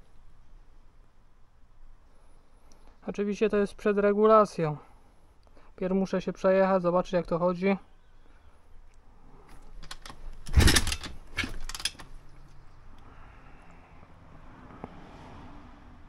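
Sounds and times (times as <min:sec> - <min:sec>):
engine turning over on kick-start: 0:09.9 - 0:12.1.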